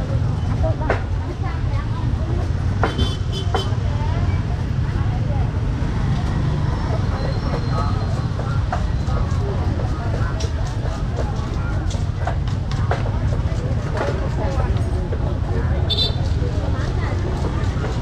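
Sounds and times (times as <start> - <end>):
chatter of voices: 0.0 - 18.0
motorbike and traffic rumble: 0.0 - 18.0.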